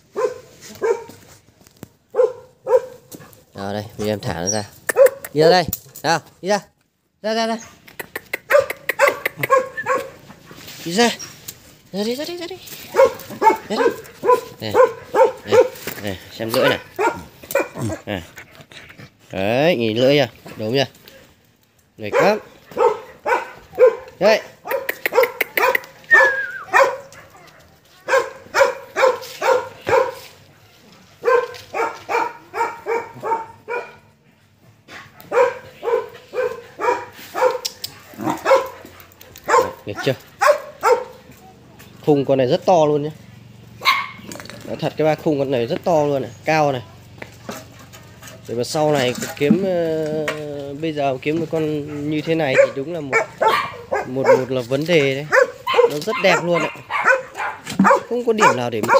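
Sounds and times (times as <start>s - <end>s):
dog barking: 0.1s - 1.2s, 2.1s - 3.2s, 4.9s - 5.4s, 8.4s - 10.2s, 12.9s - 18.1s, 22.0s - 30.4s, 31.2s - 34.2s, 34.9s - 41.6s, 43.8s - 44.3s, 51.8s - 58.9s.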